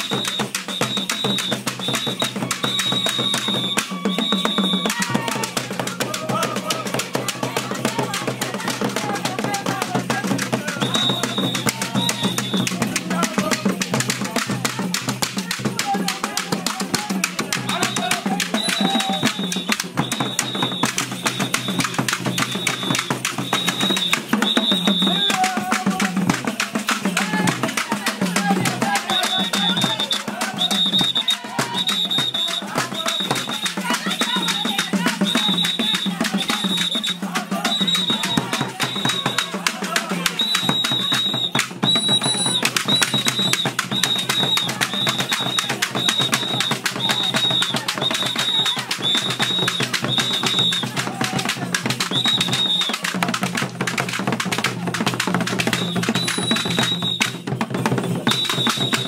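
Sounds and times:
fast dense drumming: 0.0 - 59.0.

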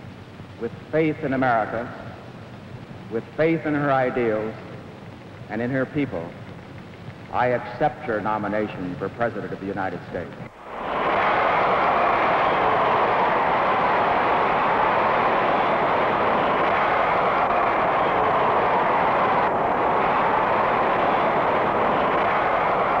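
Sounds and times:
crowd cheering and applauding: 10.5 - 23.0.

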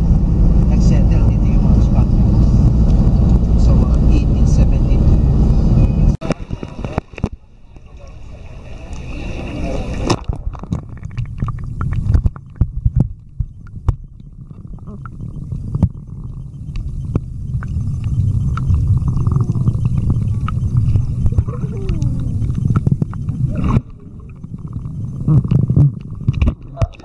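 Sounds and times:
muffled underwater rumble: 0.0 - 27.0
faint muffled voices: 6.1 - 10.2, 19.1 - 22.6.

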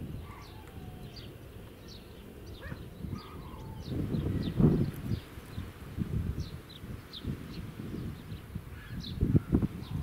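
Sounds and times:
small birds chirping: 0.0 - 10.0
wind rumble on microphone: 0.0 - 10.0
loud bird call: 0.1 - 4.6.

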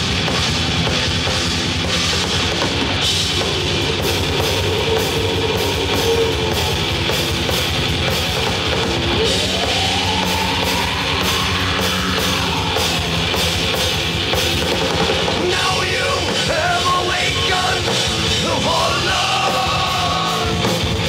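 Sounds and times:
heavy rock band playing: 0.0 - 21.0.

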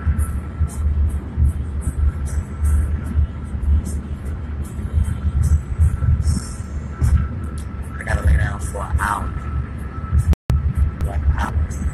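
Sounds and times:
car rumbling from inside cabin: 0.0 - 11.9.

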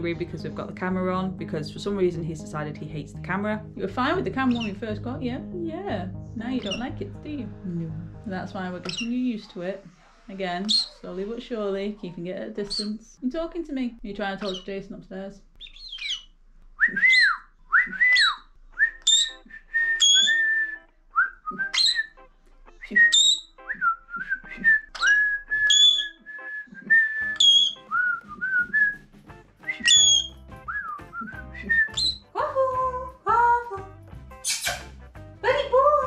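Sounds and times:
soft background music: 0.0 - 15.4, 17.7 - 36.0
person whistling: 16.8 - 21.9, 22.8 - 29.0, 29.6 - 32.2.

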